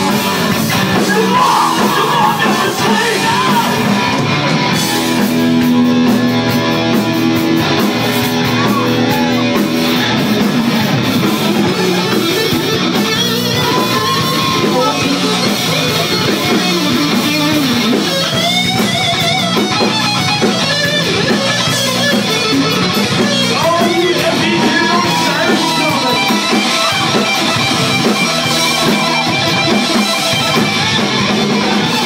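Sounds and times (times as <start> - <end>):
electric guitar bent notes: 0.0 - 32.0
rock band playing loudly: 0.0 - 32.0.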